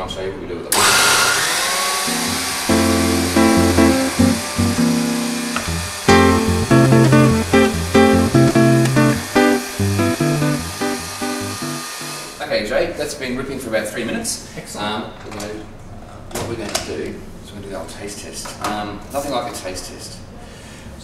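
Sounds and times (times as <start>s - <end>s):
bass line under held chords: 2.3s - 11.9s.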